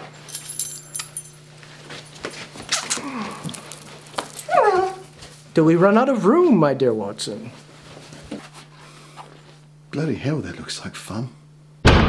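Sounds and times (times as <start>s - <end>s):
person high ooh vocal: 2.9s - 3.6s
person humming low mm: 2.9s - 3.8s.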